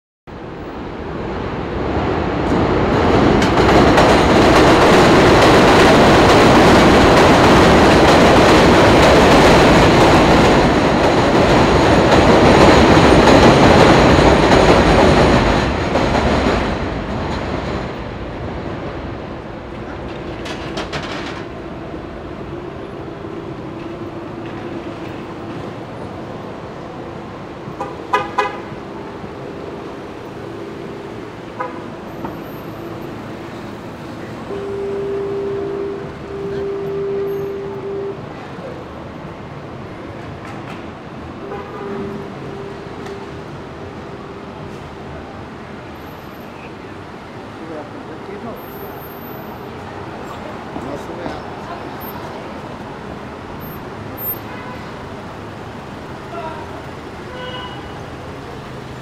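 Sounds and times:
elevated train rumbling: 0.3s - 59.0s
street traffic: 0.3s - 59.0s
vehicle horn honking: 27.8s - 28.8s, 34.5s - 38.5s, 41.4s - 43.4s, 57.2s - 58.0s.

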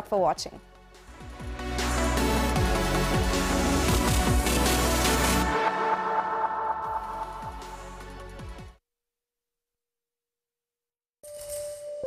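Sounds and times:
whoosh: 3.9s - 8.5s
electronic jingle tone: 5.5s - 8.2s.

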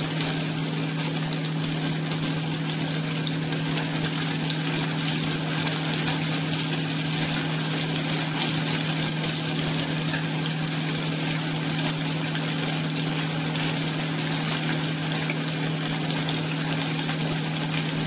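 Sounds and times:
low electrical hum: 0.0s - 18.0s
oil sizzling in a deep fryer: 0.0s - 18.0s.

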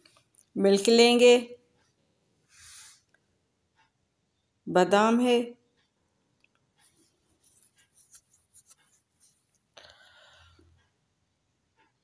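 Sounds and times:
scratchy rustling: 6.8s - 9.7s.

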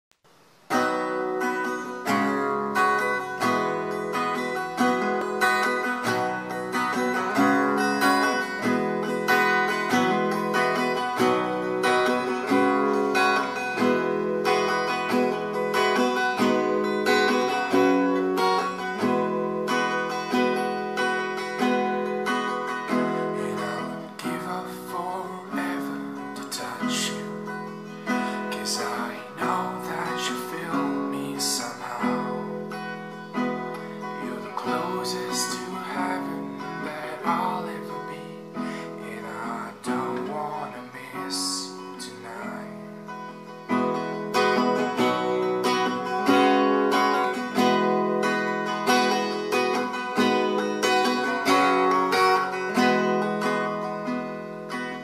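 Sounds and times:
acoustic guitar picked chords: 0.2s - 55.0s.

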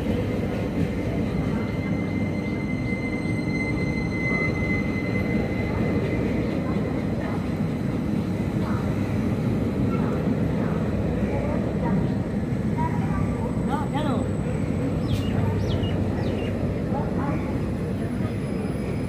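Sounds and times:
faint voices: 0.0s - 19.0s
train wheels rumbling: 0.0s - 19.0s.

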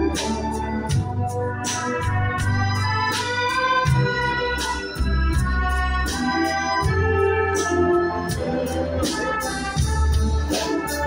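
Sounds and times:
church ensemble playing a hymn: 0.0s - 11.0s.

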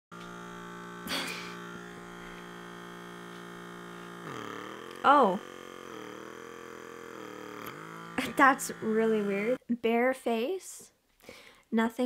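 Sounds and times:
small suction pump humming: 0.1s - 9.6s.

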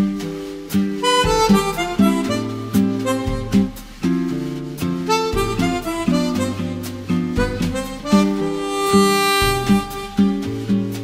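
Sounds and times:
bass and chords backing: 0.0s - 11.0s
harmonica jazz melody: 0.0s - 11.0s.

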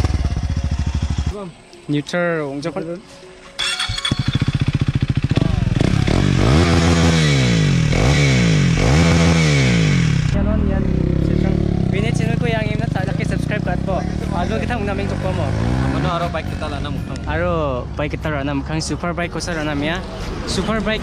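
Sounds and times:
motorcycle engine revving: 0.0s - 1.4s, 3.6s - 17.2s
people talking: 1.3s - 3.1s, 5.3s - 6.4s, 10.4s - 21.0s.

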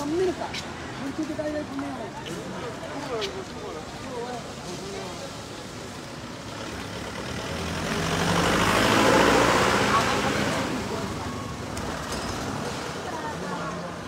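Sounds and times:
vehicle passing by: 6.5s - 13.9s.

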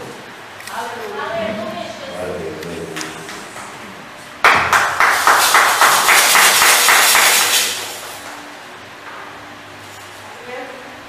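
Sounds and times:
hands clapping rapidly: 4.4s - 8.0s.

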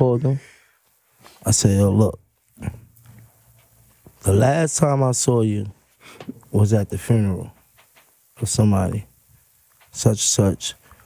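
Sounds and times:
man speaking: 0.0s - 0.6s, 1.4s - 2.8s, 4.2s - 5.8s, 6.4s - 7.6s, 8.4s - 9.2s, 9.9s - 10.8s.

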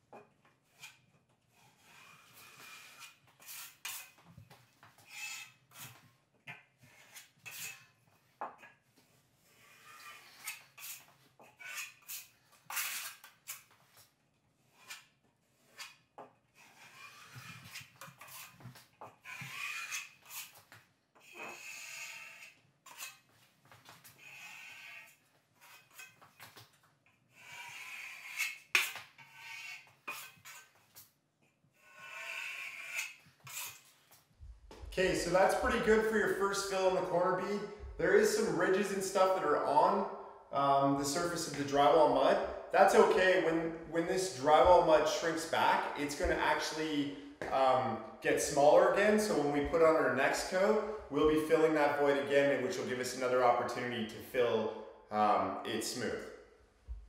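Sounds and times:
trowel scraping on metal: 0.7s - 4.2s, 6.9s - 8.0s, 9.5s - 13.7s, 16.6s - 20.6s, 21.2s - 23.3s, 24.2s - 26.3s, 27.3s - 30.9s, 31.8s - 34.1s.

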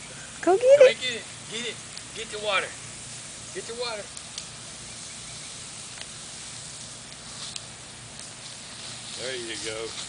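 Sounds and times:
lawn sprinkler spraying water: 0.0s - 10.0s.

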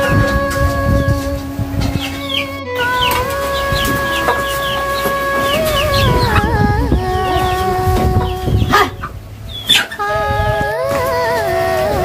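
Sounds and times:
slow melody of long held notes: 0.0s - 12.0s
chickens clucking: 1.8s - 11.1s.

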